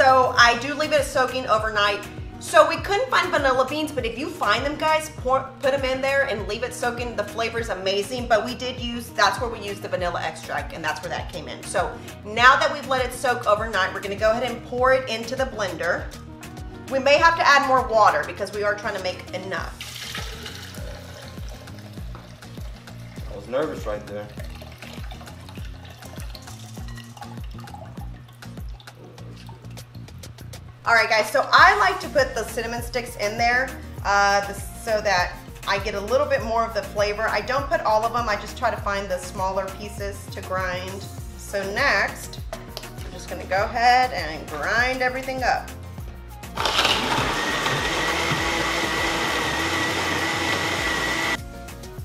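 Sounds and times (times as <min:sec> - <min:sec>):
rice and water pouring: 0:19.8 - 0:30.0
music with thumping beat: 0:19.9 - 0:30.8, 0:32.0 - 0:52.0
blender grinding with high whine: 0:46.5 - 0:51.4.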